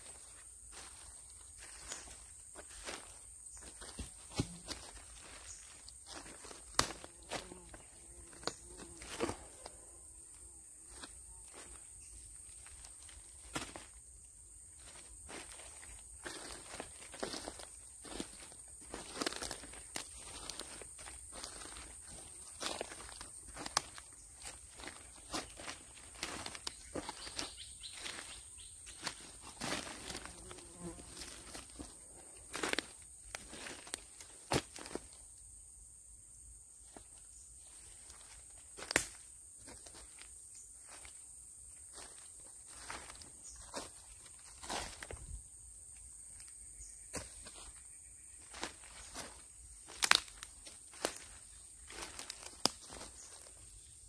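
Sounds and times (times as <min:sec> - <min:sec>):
leaves rustling: 0:00.0 - 0:09.7, 0:14.8 - 0:35.1, 0:48.4 - 0:53.7
footsteps crunching dry leaves: 0:00.0 - 0:09.8, 0:10.9 - 0:14.0, 0:14.7 - 0:35.2, 0:36.9 - 0:41.2, 0:41.9 - 0:45.4, 0:47.0 - 0:54.0.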